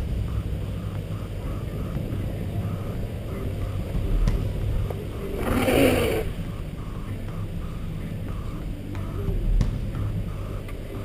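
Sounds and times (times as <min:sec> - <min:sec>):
car rumble and wind noise: 0:00.0 - 0:11.0.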